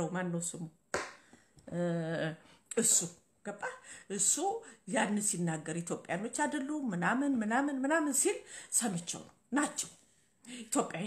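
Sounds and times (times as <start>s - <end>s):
woman speaking: 0.0s - 0.8s, 1.7s - 11.0s.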